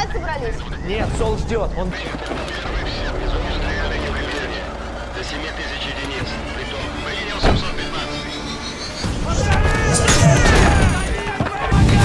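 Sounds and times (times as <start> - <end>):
indistinct shouting voices: 2.5 - 12.0.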